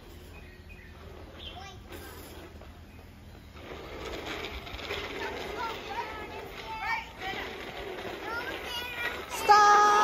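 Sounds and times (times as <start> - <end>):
outdoor background noise: 0.0 - 10.0
girl calling out or singing: 9.3 - 10.0.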